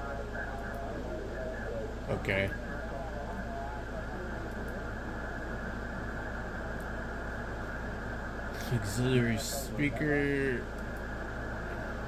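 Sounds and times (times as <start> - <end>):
low hum: 0.0 - 12.0
radio band noise hiss: 0.0 - 12.0.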